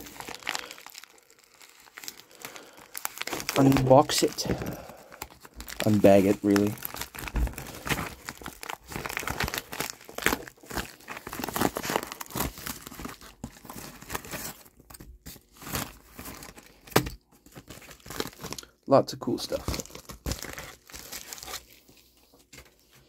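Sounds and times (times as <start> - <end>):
plastic bag crinkling: 0.0 - 22.4.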